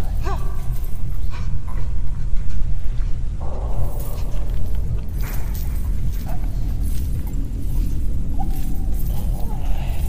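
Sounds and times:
dense low rumble: 0:00.0 - 0:10.0.

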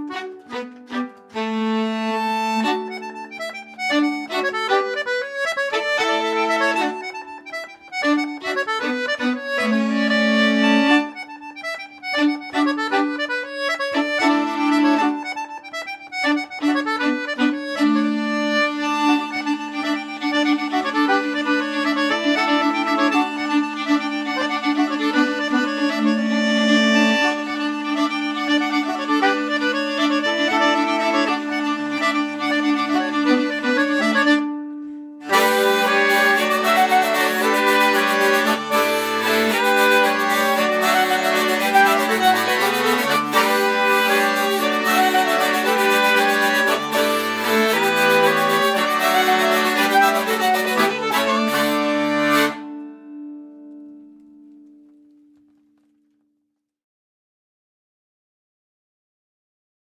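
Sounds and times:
hurdy-gurdy drone: 0:00.0 - 0:34.4, 0:35.2 - 0:52.8
folk quartet playing a tune: 0:00.0 - 0:54.5
accordion: 0:00.0 - 0:54.6.

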